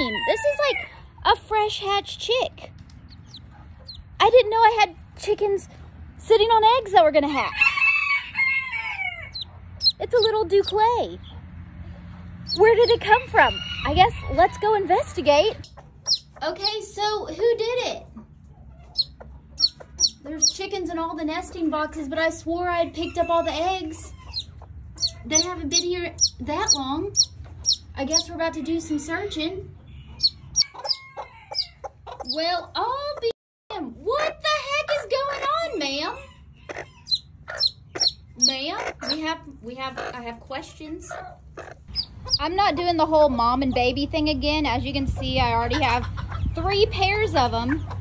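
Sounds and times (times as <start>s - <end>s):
hen clucking: 0.0s - 16.9s, 18.0s - 22.0s, 22.6s - 33.3s, 34.1s - 48.0s
chick peeping: 0.0s - 17.2s, 18.0s - 22.1s, 22.7s - 33.3s, 34.2s - 48.0s.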